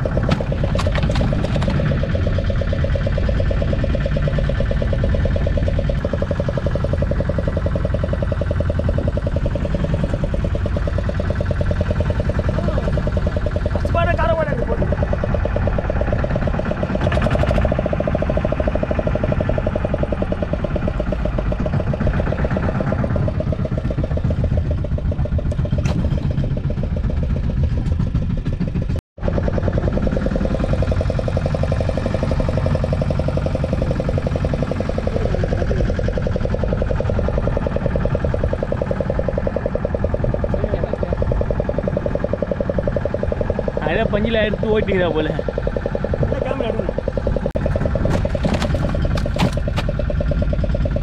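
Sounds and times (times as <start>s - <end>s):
boat engine idling: 0.0s - 51.0s.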